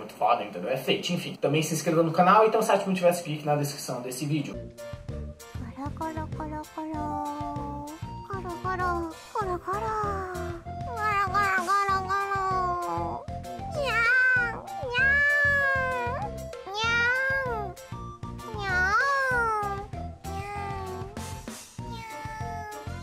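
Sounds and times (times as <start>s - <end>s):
light background music: 0.2s - 23.0s.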